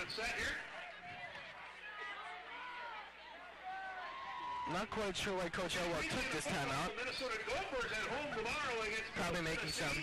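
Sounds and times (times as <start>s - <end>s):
man commentating: 4.7s - 10.0s.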